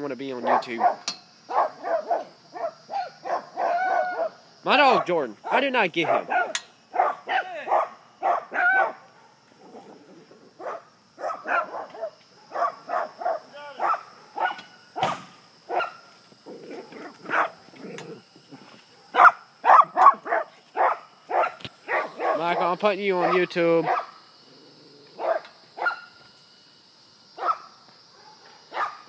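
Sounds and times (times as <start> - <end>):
dog barking: 0.4 - 4.4, 6.0 - 9.4, 10.6 - 14.6, 15.7 - 16.0, 17.3 - 17.6, 18.9 - 22.6, 23.2 - 24.2, 25.2 - 26.1, 27.4 - 29.0.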